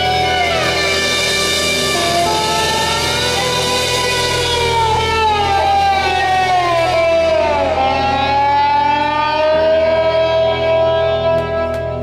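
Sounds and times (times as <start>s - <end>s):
electric guitar sustained lead note: 0.0s - 12.0s
steady bass: 0.0s - 12.0s.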